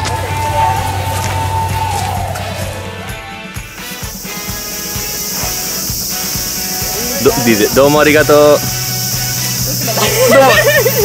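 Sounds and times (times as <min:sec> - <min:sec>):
steady hiss: 0:03.9 - 0:11.0
person speaking: 0:06.8 - 0:08.6.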